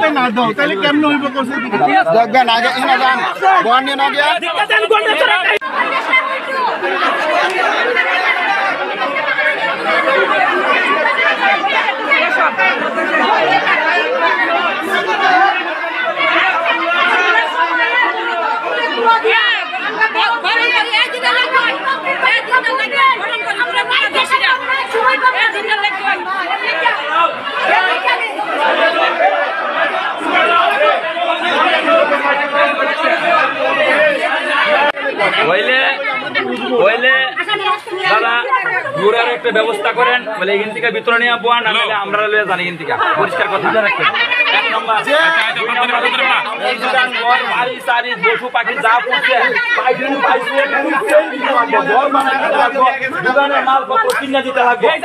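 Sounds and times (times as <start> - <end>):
crowd chatter: 0.0 - 55.0.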